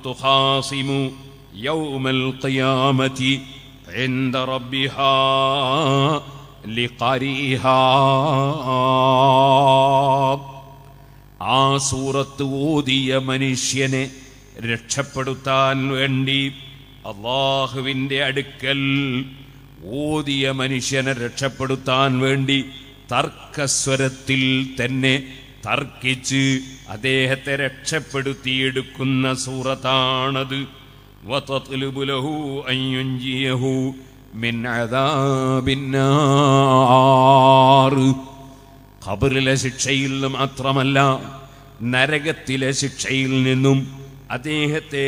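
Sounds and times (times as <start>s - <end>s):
man chanting: 0.0s - 45.0s.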